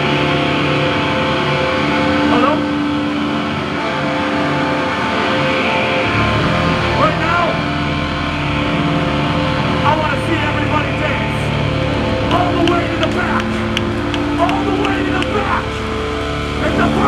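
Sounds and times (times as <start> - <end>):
punk band electric guitars: 0.0 - 17.0.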